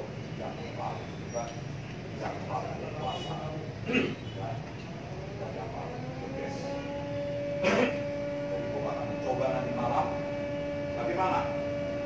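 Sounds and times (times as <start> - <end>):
two-tone steady hum: 0.0 - 12.0.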